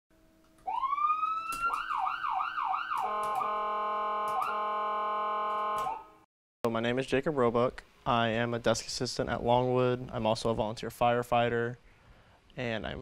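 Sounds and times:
fire engine siren: 0.6 - 6.2.

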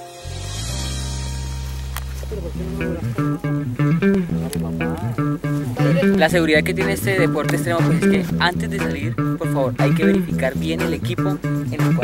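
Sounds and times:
held low chord: 0.0 - 12.0
plucked guitar and bass groove: 0.0 - 12.0.

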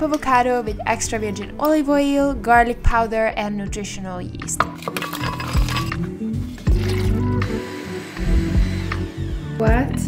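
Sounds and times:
background music: 0.0 - 10.0
blender jar and lid clinking: 4.6 - 6.0, 6.6 - 7.2.

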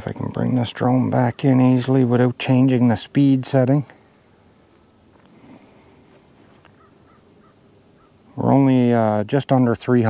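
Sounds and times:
faint bird calls: 0.2 - 2.2, 3.8 - 8.6.

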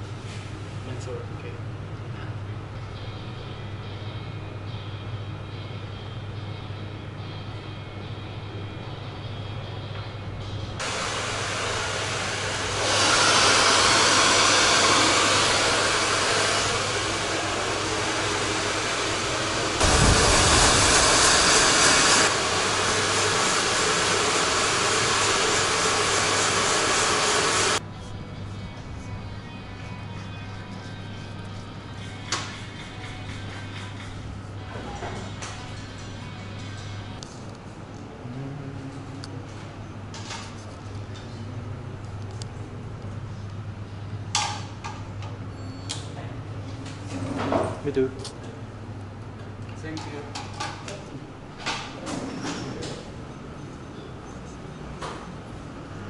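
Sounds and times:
hair dryer blowing: 10.8 - 27.8.

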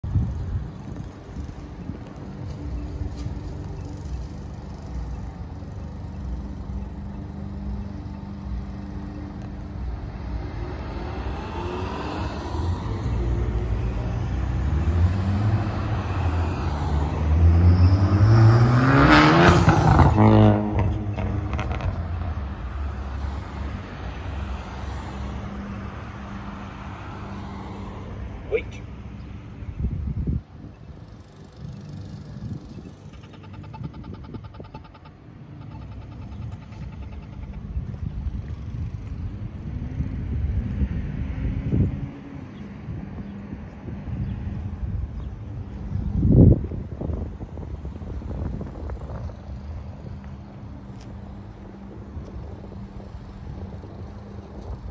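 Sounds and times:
steady rumble of cars: 0.0 - 54.9
vehicle accelerating away: 5.5 - 28.4.

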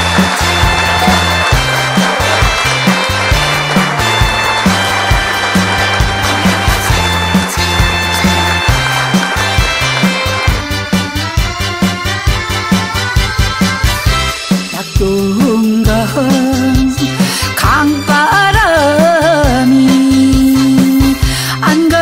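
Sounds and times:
bass line: 0.0 - 14.3
horns playing melody: 0.0 - 14.4
drums steady beat: 0.0 - 16.8.

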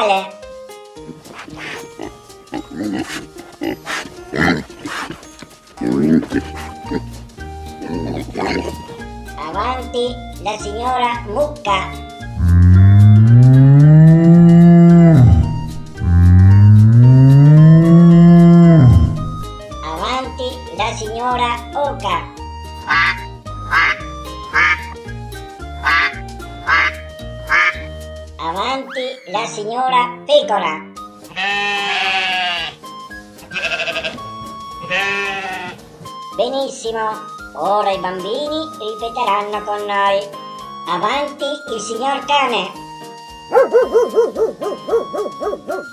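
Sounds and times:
background music: 0.0 - 45.9
sheep bleating: 1.4 - 5.2, 17.0 - 19.4, 31.3 - 32.9, 33.5 - 34.2, 34.8 - 35.8
cow mooing: 12.4 - 19.5.

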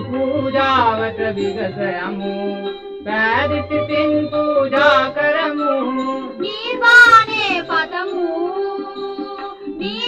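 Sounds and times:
song with wavering melody: 0.0 - 10.0.

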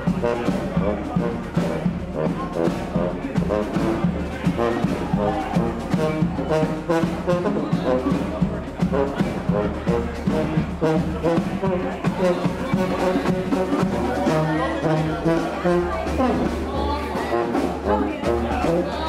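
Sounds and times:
brass band playing jazz: 0.0 - 19.0
steady drum beat: 0.0 - 19.0.

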